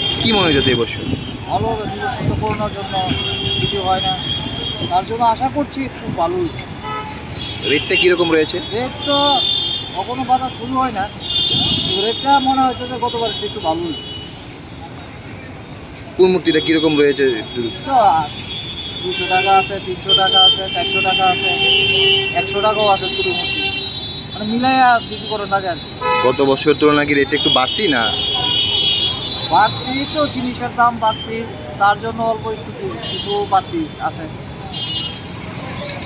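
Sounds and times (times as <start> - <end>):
man talking: 0.0 - 6.7, 7.6 - 14.1, 16.2 - 18.4, 19.0 - 23.8, 24.4 - 28.6, 29.5 - 34.4
roadside traffic: 0.0 - 36.0
vehicle horn: 11.2 - 12.5, 18.4 - 24.2, 26.0 - 26.6.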